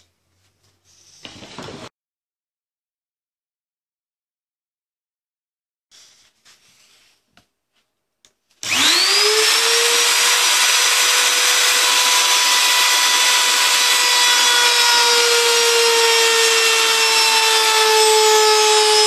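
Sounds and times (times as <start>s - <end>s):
electric router cutting wood: 8.6s - 19.0s.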